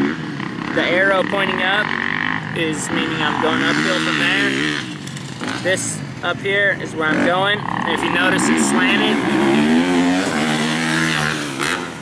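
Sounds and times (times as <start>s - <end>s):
motocross bike engine running: 0.0s - 12.0s.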